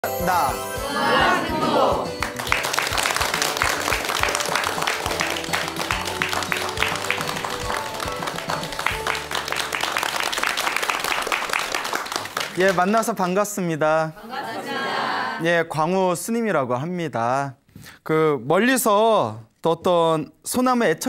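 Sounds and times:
background music: 0:00.0 - 0:13.2
audience clapping: 0:01.2 - 0:13.1.

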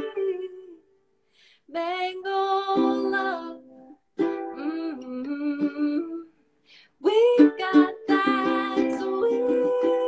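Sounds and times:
woman singing: 0:00.0 - 0:00.9, 0:01.7 - 0:06.4, 0:07.0 - 0:10.0
ukulele: 0:00.0 - 0:01.0, 0:01.8 - 0:06.4, 0:07.0 - 0:10.0
breath: 0:01.2 - 0:01.7, 0:06.6 - 0:07.0.

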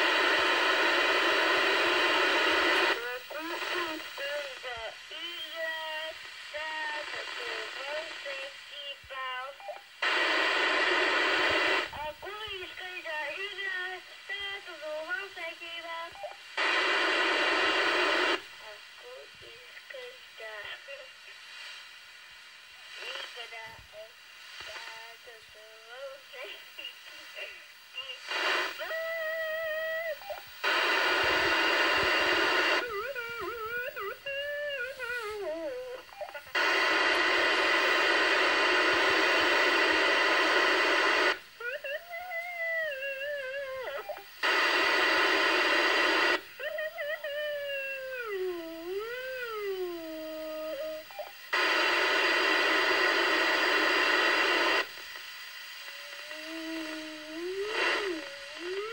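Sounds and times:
radio hiss: 0:00.0 - 0:58.9.

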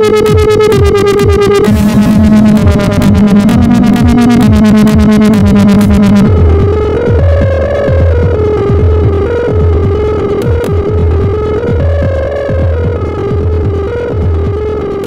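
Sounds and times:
pulsing low synth bass: 0:00.0 - 0:15.0
wavering synth melody: 0:00.0 - 0:15.0.

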